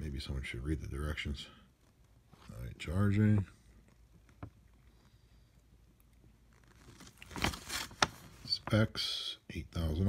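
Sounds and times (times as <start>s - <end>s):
paper rustling: 6.4s - 8.7s.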